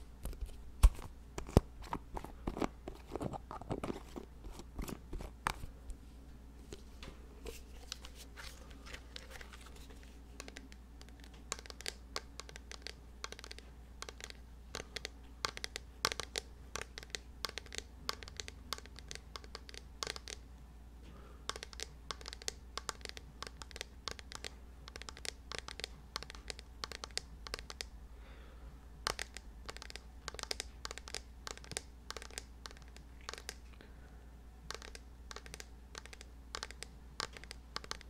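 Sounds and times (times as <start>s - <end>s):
fingers tapping and scratching: 10.4s - 20.4s, 21.5s - 27.9s, 29.0s - 33.7s, 34.7s - 38.0s.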